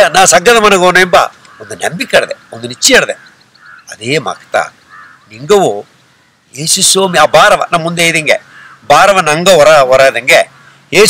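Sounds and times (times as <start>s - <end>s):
man speaking: 0.0s - 3.2s, 3.9s - 5.9s, 6.5s - 11.0s.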